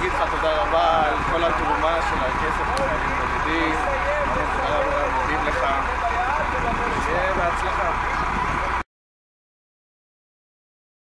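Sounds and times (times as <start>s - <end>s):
faint voices talking: 0.0s - 8.8s.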